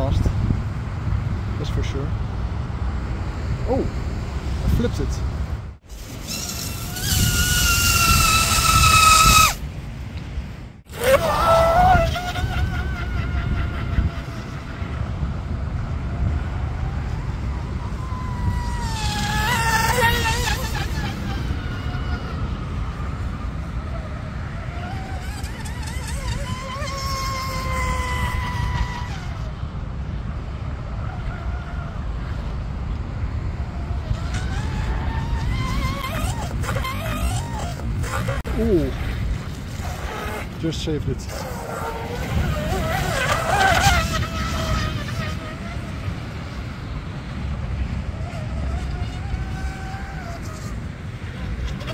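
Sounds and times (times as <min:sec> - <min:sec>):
electric motor whining: 0:05.9 - 0:09.6, 0:17.1 - 0:22.4, 0:23.0 - 0:29.5, 0:34.1 - 0:40.6, 0:41.3 - 0:46.1.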